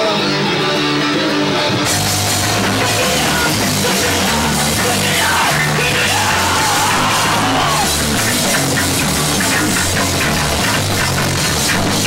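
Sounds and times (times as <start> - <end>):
punk rock band playing: 0.0 - 12.0
yelled vocal: 1.8 - 12.0.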